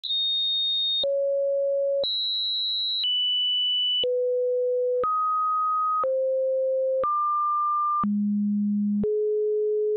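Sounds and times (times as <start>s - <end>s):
low sine tone hums: 4.1s - 9.9s.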